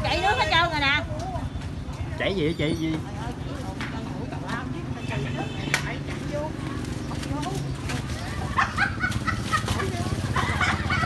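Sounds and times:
low hum of street traffic: 0:00.0 - 0:11.0
people talking and exclaiming: 0:00.0 - 0:11.0.

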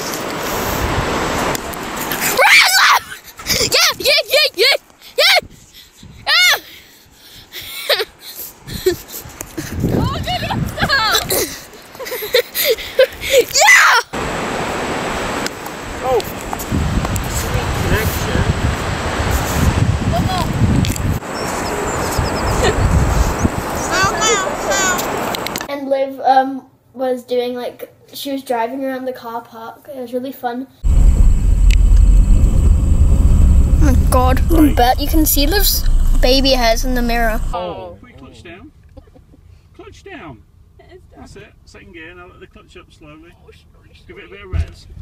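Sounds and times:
high-pitched shrieks and yells: 0:02.4 - 0:03.2
wind buffeting microphone: 0:08.6 - 0:11.4, 0:15.8 - 0:25.6, 0:30.8 - 0:37.6.

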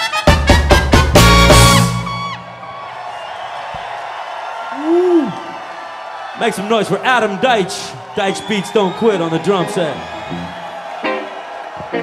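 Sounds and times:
crowd noise: 0:01.1 - 0:12.0
person whooping: 0:04.6 - 0:05.6.

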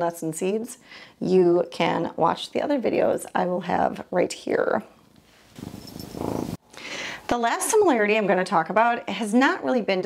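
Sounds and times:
pet purring: 0:05.6 - 0:06.6
short breath: 0:06.1 - 0:07.3.

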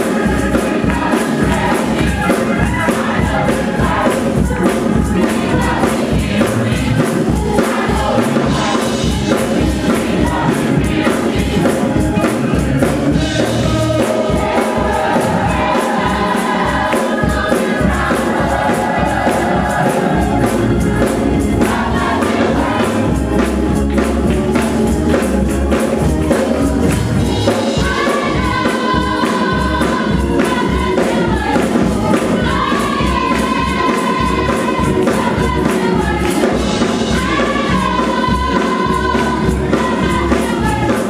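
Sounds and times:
gospel choir singing: 0:00.0 - 0:41.0
keyboard accompaniment: 0:00.0 - 0:41.0.

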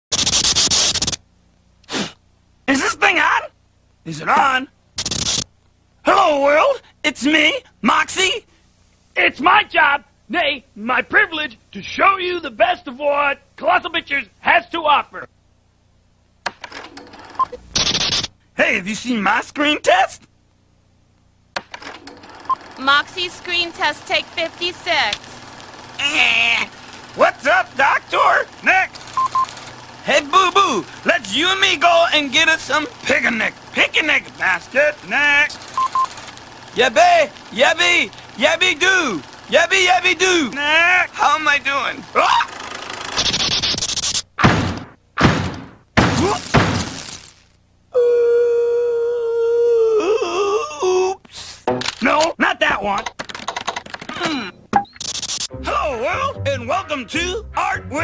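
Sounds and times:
scratchy static noise: 0:00.1 - 0:06.6, 0:17.2 - 0:19.8, 0:22.3 - 0:44.5, 0:46.2 - 0:47.6, 0:51.4 - 0:57.3
short electronic beeps: 0:17.4 - 0:18.2, 0:29.1 - 0:29.5, 0:35.7 - 0:36.2
cartoon character vocal sounds: 0:26.0 - 0:27.8, 0:42.0 - 0:42.8, 0:48.0 - 0:51.7.

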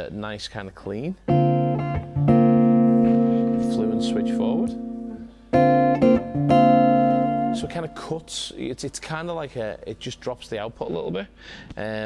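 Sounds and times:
clean electric guitar chords strummed: 0:01.3 - 0:08.2.

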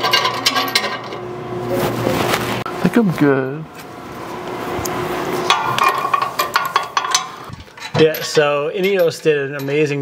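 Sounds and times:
steady low hum: 0:00.0 - 0:07.8.

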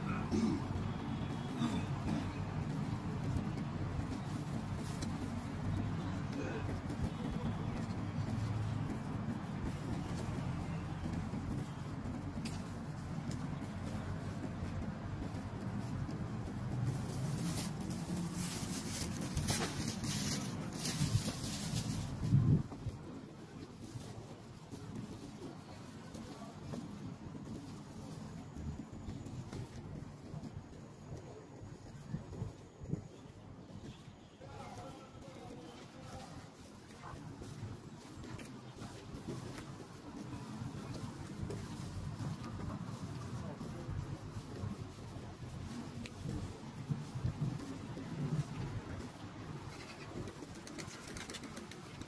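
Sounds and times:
distant traffic rumble: 0:00.0 - 0:52.0
faint voices of passers-by: 0:00.0 - 0:52.0.

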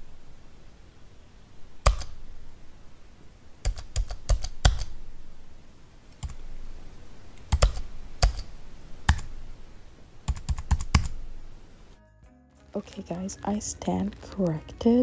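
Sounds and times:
keyboard typing clicks: 0:01.8 - 0:02.2, 0:03.6 - 0:04.9, 0:06.1 - 0:06.4, 0:07.4 - 0:09.4, 0:10.2 - 0:11.3.

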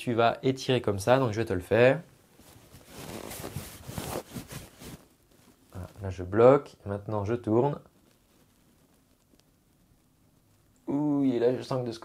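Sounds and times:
shirt fabric rustling: 0:02.2 - 0:06.1
small crackly scrapes: 0:02.4 - 0:06.0, 0:07.9 - 0:10.7.

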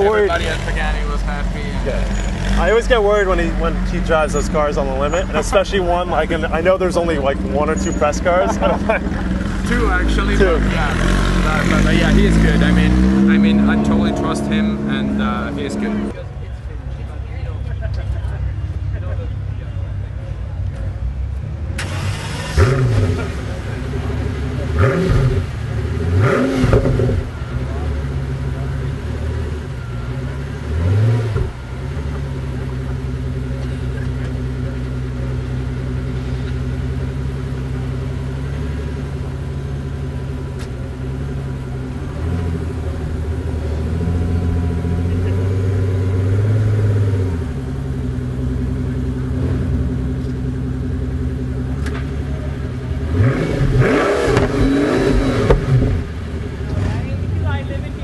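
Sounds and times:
sports car engine idling and revving: 0:00.0 - 0:58.0.

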